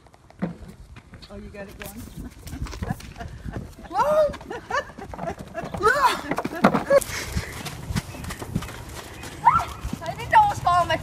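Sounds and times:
horse hoofbeats trotting: 0:00.0 - 0:11.0.

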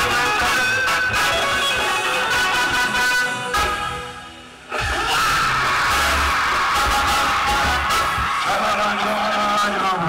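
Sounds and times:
live concert music: 0:00.0 - 0:10.0
crowd cheering and screaming: 0:04.6 - 0:10.0.

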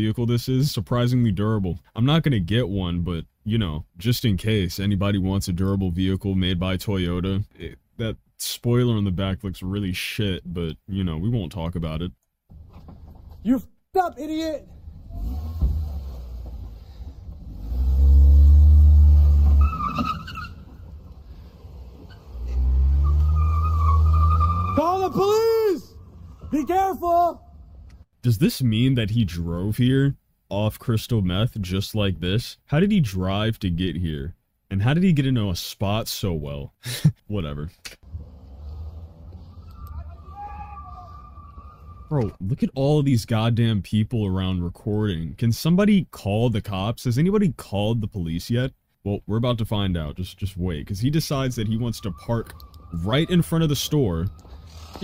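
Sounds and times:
car engine revving: 0:14.7 - 0:25.1, 0:38.0 - 0:42.1
tire squeal: 0:14.8 - 0:27.8, 0:38.1 - 0:42.4, 0:51.7 - 0:55.0.

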